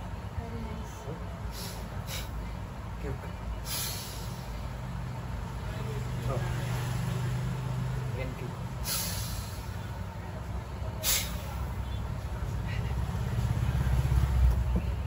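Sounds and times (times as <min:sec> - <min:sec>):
vehicle engines rumbling: 0:00.0 - 0:15.0
brief sharp hisses: 0:03.7 - 0:04.5, 0:08.8 - 0:09.7, 0:11.0 - 0:11.6.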